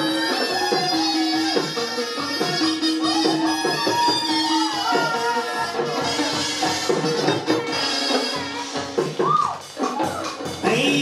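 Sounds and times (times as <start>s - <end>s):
low percussion beat: 0.0s - 11.0s
traditional ensemble music: 0.0s - 11.0s.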